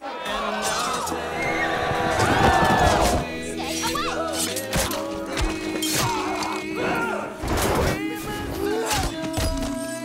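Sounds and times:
orchestral score: 0:00.0 - 0:09.0.

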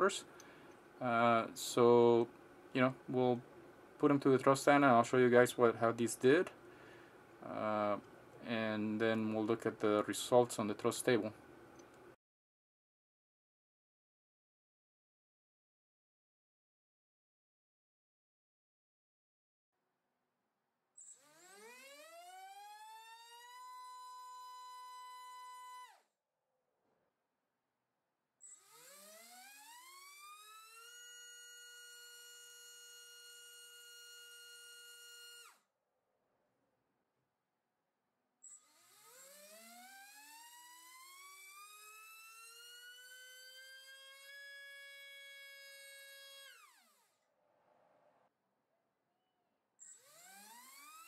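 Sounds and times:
electric motor whining: 0:21.1 - 0:26.0, 0:28.5 - 0:35.6, 0:38.5 - 0:47.2, 0:49.8 - 0:51.0.

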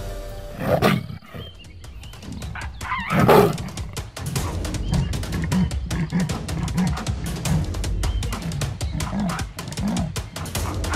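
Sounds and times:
background music: 0:00.0 - 0:10.9
loud animal calls: 0:02.6 - 0:10.9.

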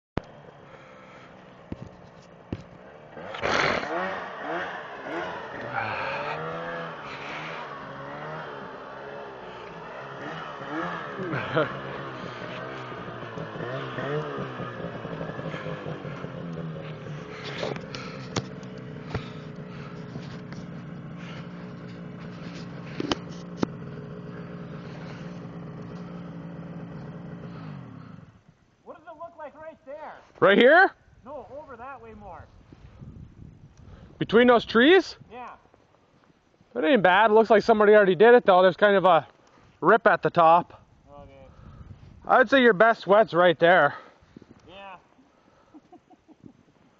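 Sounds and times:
snowmobile engine revving: 0:00.2 - 0:29.3.

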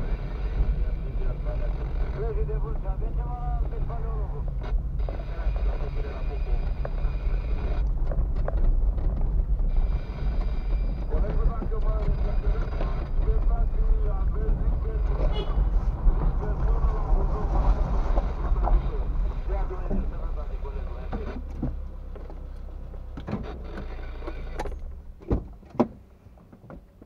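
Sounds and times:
indistinct talk: 0:00.0 - 0:07.9, 0:11.1 - 0:21.8.

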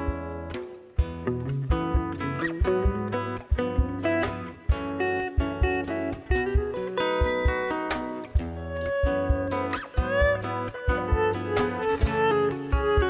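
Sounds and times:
guitar: 0:00.0 - 0:13.0
steady drum beat: 0:01.0 - 0:13.0.

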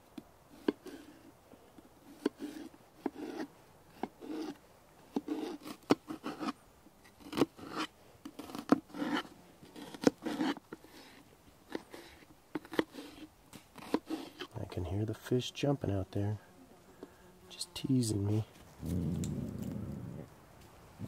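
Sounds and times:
crisp cutting and scraping: 0:02.0 - 0:14.5.

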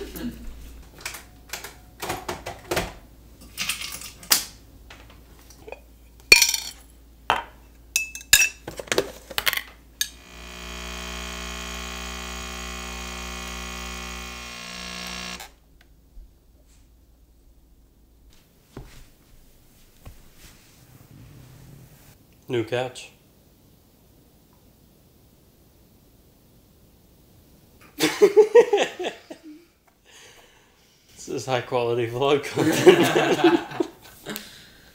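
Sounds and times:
kitchen items clicking and knocking: 0:01.0 - 0:04.5, 0:05.6 - 0:10.2
espresso machine pump buzzing: 0:10.0 - 0:15.6.

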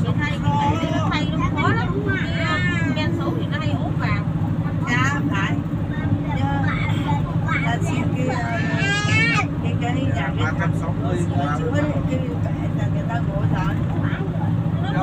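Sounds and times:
people talking: 0:00.0 - 0:15.0
vehicle engine and road drone: 0:00.0 - 0:15.0.

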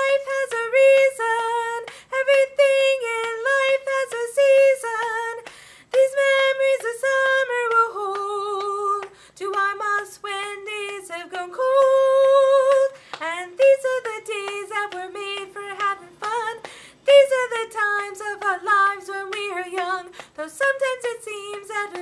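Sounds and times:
woman singing unaccompanied: 0:00.0 - 0:22.0.

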